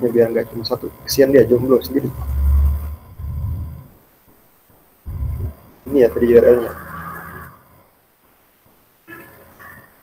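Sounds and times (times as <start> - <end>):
breath blowing on microphone: 5.1 - 5.6.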